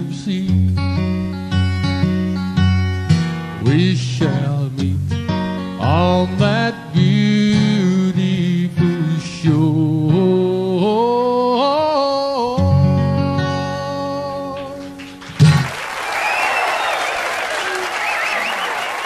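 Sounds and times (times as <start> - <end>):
acoustic guitar country tune: 0.0 - 15.8.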